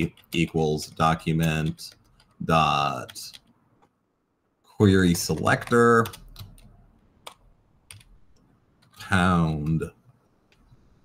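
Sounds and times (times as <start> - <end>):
computer keyboard keystrokes: 5.3 - 9.0.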